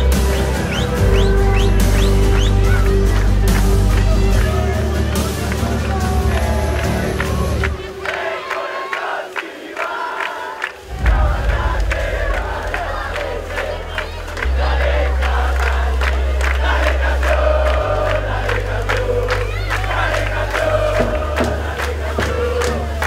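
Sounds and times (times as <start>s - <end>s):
music with deep bass line: 0.0s - 8.0s, 10.9s - 23.0s
crowd cheering and chanting: 0.0s - 23.0s.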